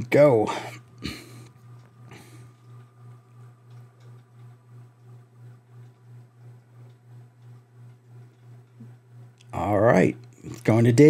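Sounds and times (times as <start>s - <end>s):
low pulsing hum: 0.0s - 11.0s
faint ticking: 1.4s - 9.6s.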